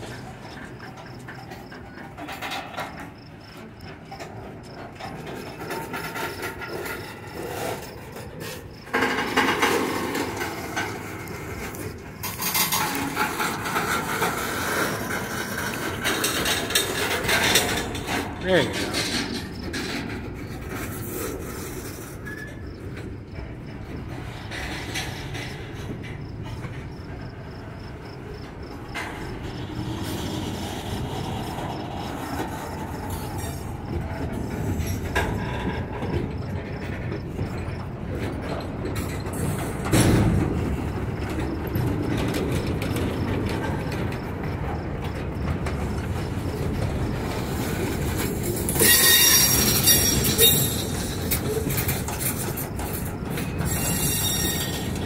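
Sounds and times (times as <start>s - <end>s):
train wheels rolling on rail: 0.0s - 55.0s
wheel flanges grinding on rail: 0.0s - 55.0s.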